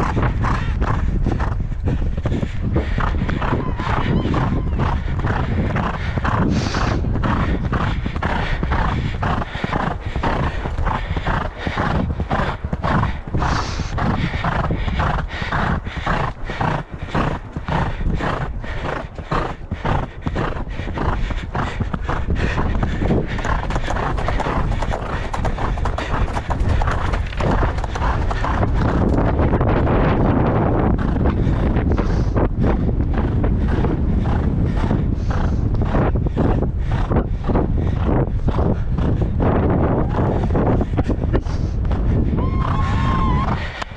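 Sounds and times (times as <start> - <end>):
horse hoofbeats on sand: 0.0 - 43.7
wind rumble on microphone: 0.0 - 43.9.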